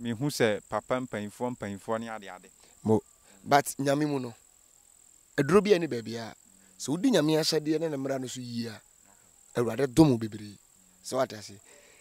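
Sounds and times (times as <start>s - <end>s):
man speaking: 0.0s - 4.4s, 5.4s - 8.8s
crickets trilling: 0.0s - 12.0s.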